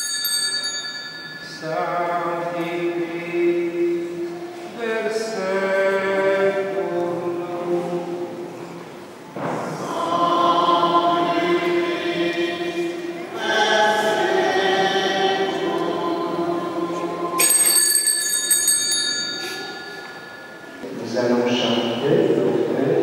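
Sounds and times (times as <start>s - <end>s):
altar bells shaken: 0.0s - 2.0s, 17.4s - 20.8s
choir singing long notes: 1.5s - 8.8s, 9.5s - 17.7s.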